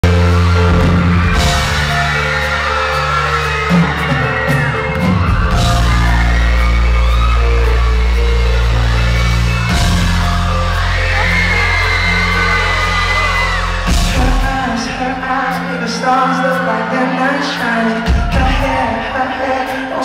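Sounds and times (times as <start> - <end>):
crowd screaming and whooping: 0.0 - 20.0
live band playing pop song: 0.0 - 20.0.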